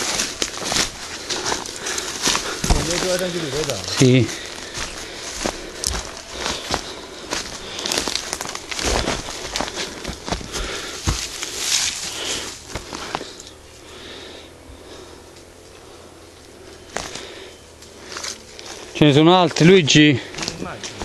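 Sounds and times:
twigs snapping: 0:00.0 - 0:13.6, 0:16.4 - 0:21.0
footsteps through dry leaves: 0:00.0 - 0:14.3, 0:16.8 - 0:21.0.

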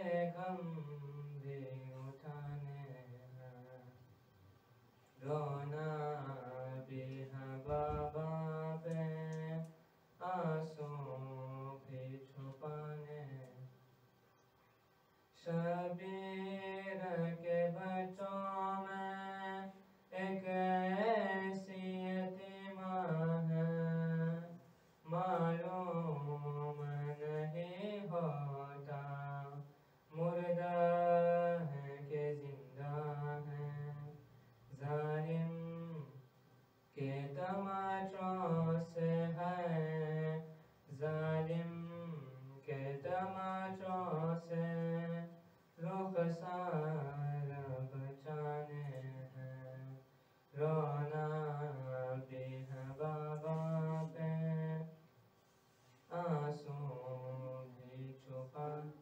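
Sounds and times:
man chanting into a microphone: 0:00.0 - 0:04.0, 0:05.2 - 0:13.8, 0:15.3 - 0:36.3, 0:36.9 - 0:55.0, 0:56.0 - 0:59.0.

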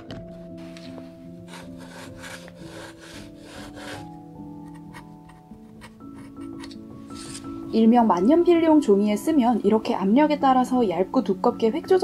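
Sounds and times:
faint music: 0:00.0 - 0:12.0
pen nib scratching paper: 0:01.5 - 0:05.0.

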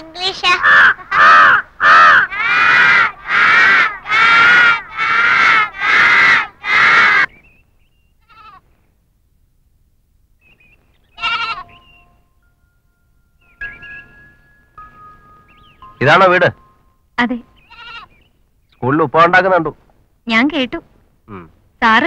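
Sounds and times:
children laughing: 0:00.3 - 0:07.3.

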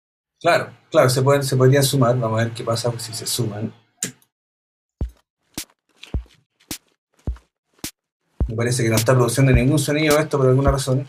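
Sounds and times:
deep synthesized kicks: 0:08.4 - 0:08.6, 0:09.6 - 0:09.8.

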